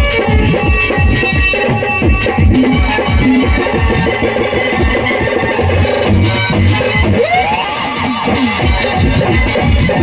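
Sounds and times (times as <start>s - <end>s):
steady drum beat: 0.0s - 7.5s, 8.2s - 10.0s
electronic keyboard music: 0.0s - 10.0s.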